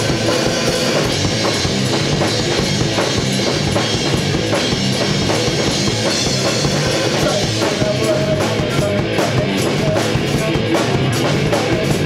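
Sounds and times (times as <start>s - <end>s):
drum kit beating: 0.0s - 12.0s
electric guitars: 0.0s - 12.0s
rock band playing live: 0.0s - 12.0s.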